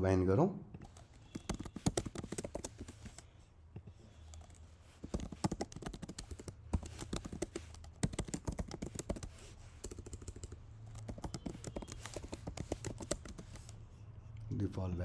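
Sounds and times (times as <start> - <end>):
keyboard typing clicks: 0.8 - 3.2, 4.2 - 13.8.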